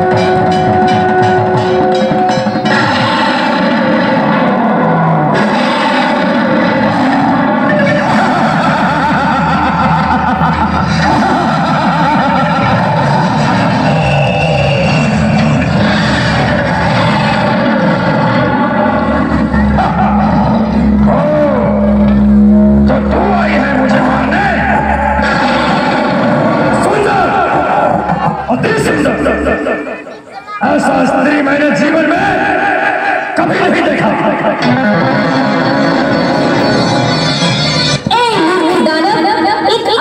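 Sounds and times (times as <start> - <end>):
music and sound effects: 0.0 - 30.4, 31.0 - 39.9
deep steady hum: 7.7 - 29.3
sweeping pitch glides: 11.0 - 30.3.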